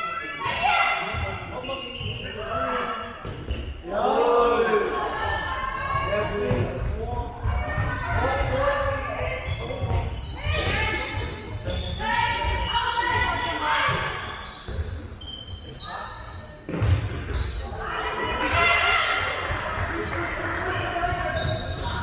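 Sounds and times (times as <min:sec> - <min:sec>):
voices echoing in large hall: 0:00.0 - 0:22.0
ball bouncing on hall floor: 0:03.2 - 0:03.8, 0:09.6 - 0:10.9, 0:16.6 - 0:17.6.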